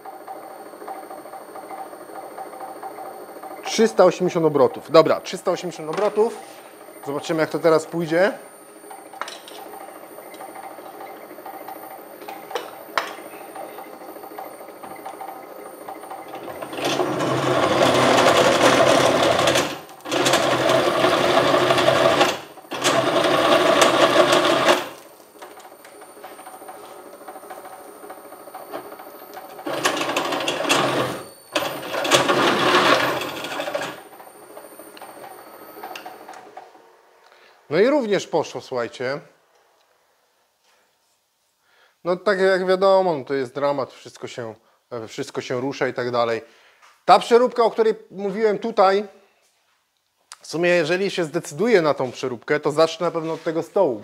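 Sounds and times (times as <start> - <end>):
drill press motor whine: 0.0 - 37.5
drill bit cutting metal: 14.8 - 25.0, 28.5 - 36.3.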